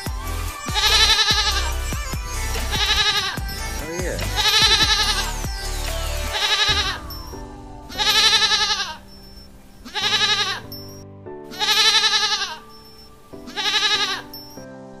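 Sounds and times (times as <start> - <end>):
background music: 0.0 - 15.0
goat bleating: 9.9 - 10.7.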